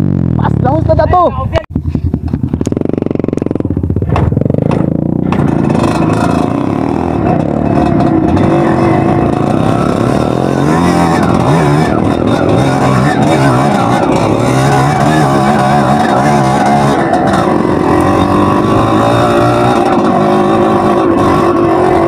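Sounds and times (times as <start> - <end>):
dirt bike engine revving: 0.0 - 1.1, 1.8 - 22.0.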